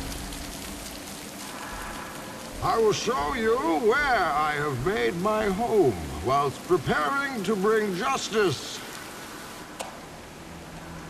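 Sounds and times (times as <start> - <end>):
heavy water splashing onto wet floor: 0.0 - 11.0.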